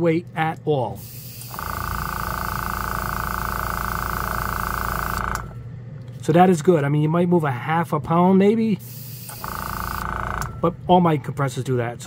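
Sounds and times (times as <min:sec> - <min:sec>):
air hissing from airbrush: 0:01.0 - 0:01.5, 0:08.8 - 0:09.4
airbrush compressor running: 0:01.0 - 0:05.6, 0:08.8 - 0:10.6.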